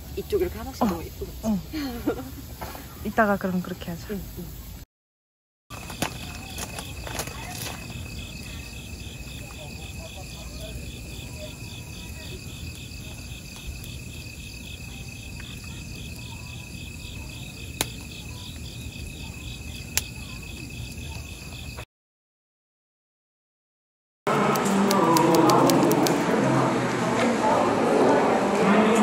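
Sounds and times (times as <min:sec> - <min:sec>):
crickets chirping: 0:00.0 - 0:04.8, 0:05.7 - 0:21.9
burning wood popping: 0:05.7 - 0:21.8
wood fire burning: 0:05.7 - 0:21.8, 0:25.0 - 0:26.3.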